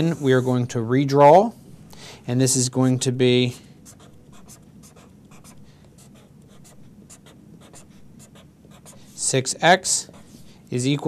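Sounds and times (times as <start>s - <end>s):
marker pen drawing on paper: 3.8s - 9.3s, 9.9s - 10.6s.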